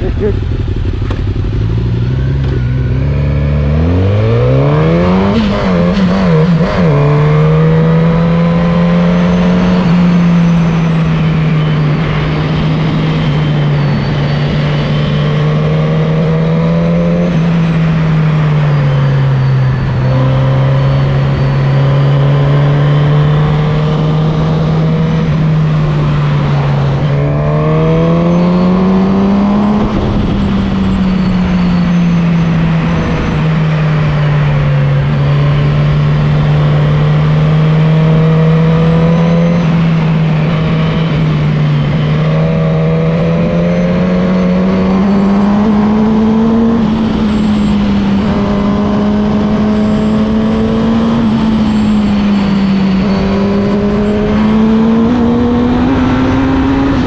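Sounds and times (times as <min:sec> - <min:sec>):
motorcycle engine: 0:00.0 - 0:57.0
wind noise: 0:22.4 - 0:57.0.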